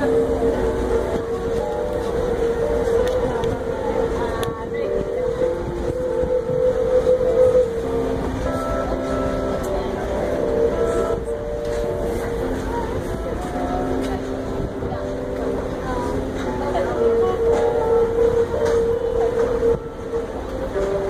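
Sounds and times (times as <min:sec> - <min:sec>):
held tones shifting in pitch: 0:00.0 - 0:21.0
train rumbling on rails: 0:00.0 - 0:21.0.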